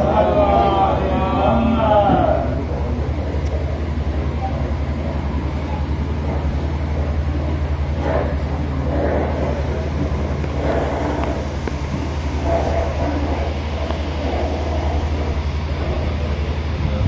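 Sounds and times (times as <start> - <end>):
electric fan humming: 0.0 - 17.0
faint voices murmuring: 0.0 - 17.0.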